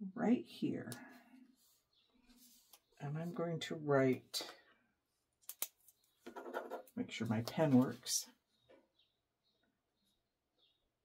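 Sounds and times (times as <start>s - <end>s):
person speaking: 6.9s - 8.4s.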